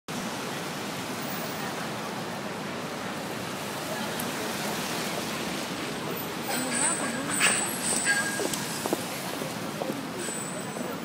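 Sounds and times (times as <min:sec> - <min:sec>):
rain: 0:00.1 - 0:11.0
wet street traffic: 0:00.1 - 0:11.0.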